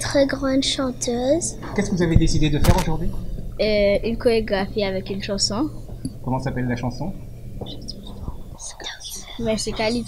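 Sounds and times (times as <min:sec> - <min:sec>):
low steady hum: 0:00.0 - 0:10.0
children murmuring and whispering: 0:07.6 - 0:10.0.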